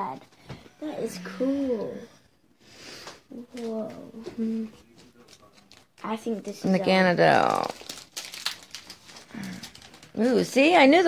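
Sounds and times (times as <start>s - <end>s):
foil wrappers and cards crinkling: 4.8s - 11.0s.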